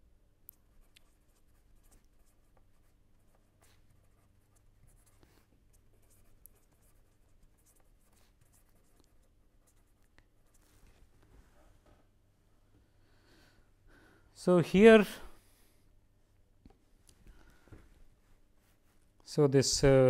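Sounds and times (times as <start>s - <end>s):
pen scratching on paper: 0.7s - 10.8s.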